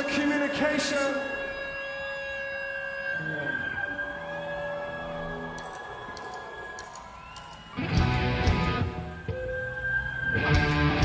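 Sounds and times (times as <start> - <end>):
rock band droning tones: 0.0 - 11.0.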